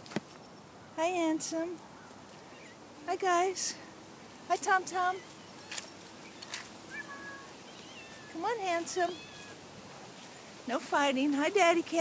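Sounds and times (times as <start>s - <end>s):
thin whistling animal calls: 5.2s - 8.4s, 9.1s - 9.6s
short rustle: 5.2s - 10.8s
short faint animal call: 5.6s - 8.4s.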